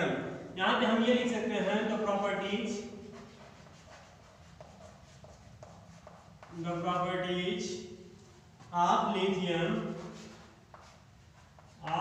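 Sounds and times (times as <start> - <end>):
man talking: 0.0 - 3.0, 6.5 - 8.0, 8.7 - 10.2, 11.8 - 12.0
chalk tapping on blackboard: 2.7 - 6.6, 10.0 - 12.0.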